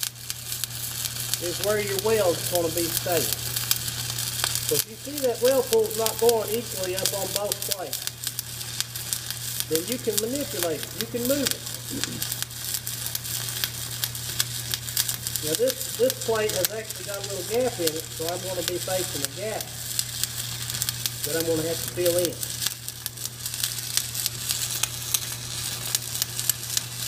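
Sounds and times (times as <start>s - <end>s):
welding arc crackling and sizzling: 0.0s - 27.0s
low steady hum: 1.3s - 23.6s.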